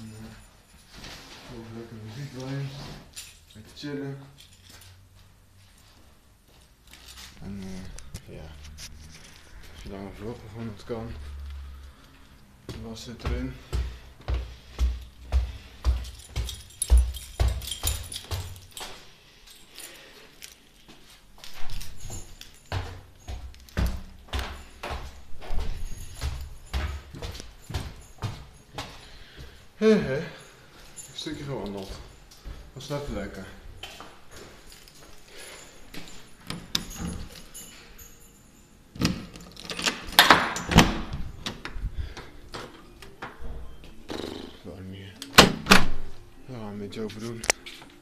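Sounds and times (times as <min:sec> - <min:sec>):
walking footsteps: 0:04.6 - 0:37.8.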